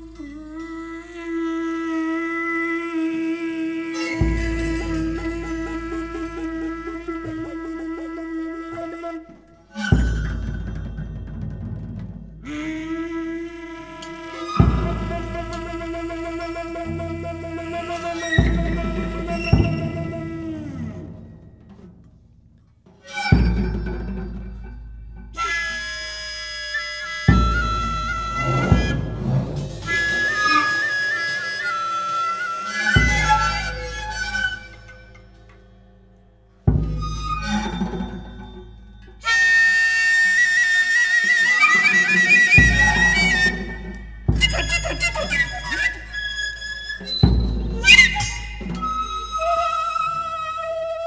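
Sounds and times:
bamboo flute tones: 0:00.0 - 0:22.0, 0:22.9 - 0:35.7, 0:36.6 - 0:51.0
deep drum strikes: 0:28.3 - 0:30.4.

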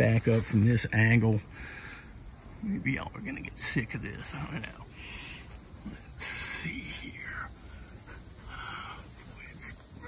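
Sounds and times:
man speaking softly: 0:00.0 - 0:01.5, 0:02.6 - 0:05.0, 0:05.8 - 0:07.6, 0:08.4 - 0:10.0.

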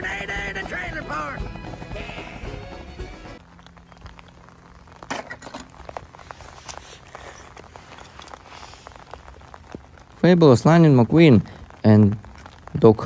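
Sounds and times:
film music: 0:00.0 - 0:03.4.

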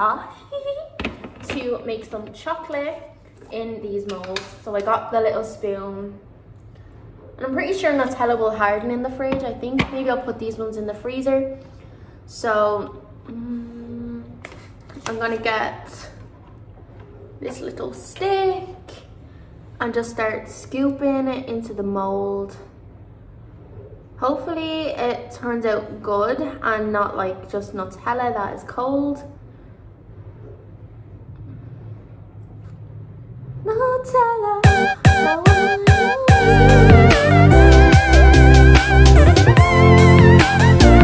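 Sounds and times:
low background hum: 0:00.0 - 0:38.4
girl humming: 0:13.3 - 0:14.3, 0:34.6 - 0:38.6.

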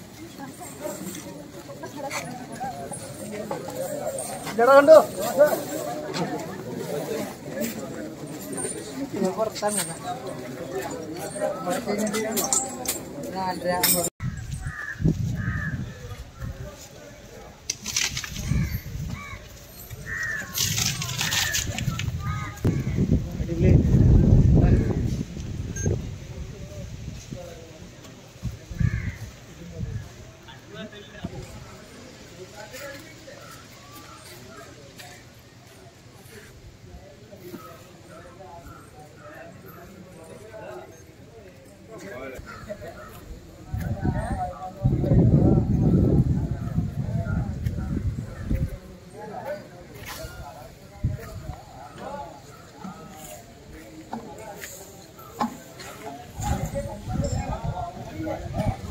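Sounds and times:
people talking: 0:00.0 - 0:14.1, 0:15.4 - 0:58.9
crow cawing: 0:14.6 - 0:16.0, 0:20.1 - 0:20.5.

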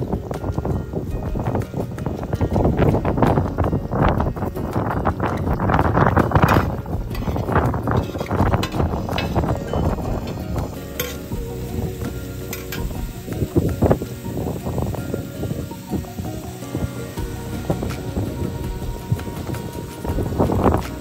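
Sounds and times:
wind rumbling on microphone: 0:00.0 - 0:21.0
vegetables stirred on iron griddle: 0:04.6 - 0:21.0.

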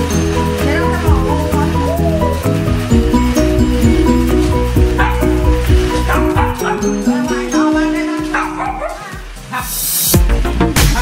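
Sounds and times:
background music with bass line: 0:00.0 - 0:11.0
small dogs yapping: 0:04.8 - 0:07.0, 0:08.3 - 0:09.2.

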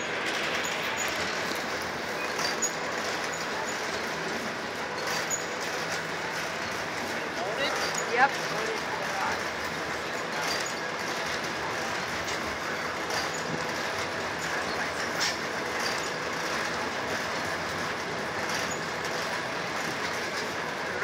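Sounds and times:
freight train wheels rumbling: 0:00.0 - 0:21.0.

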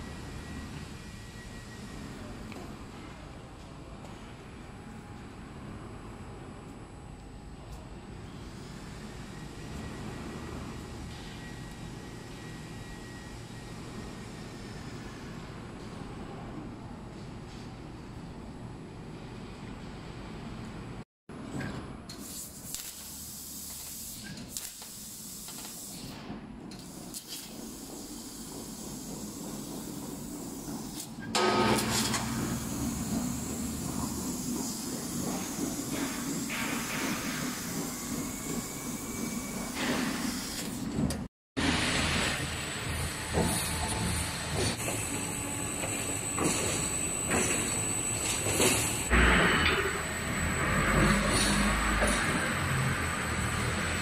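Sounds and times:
hiss of gas jet: 0:22.2 - 0:26.2
machine table running: 0:27.0 - 0:54.0.

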